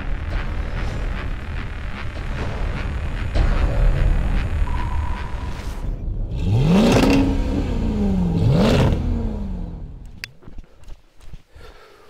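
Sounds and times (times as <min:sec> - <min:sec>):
car engine revving: 0:00.0 - 0:10.2.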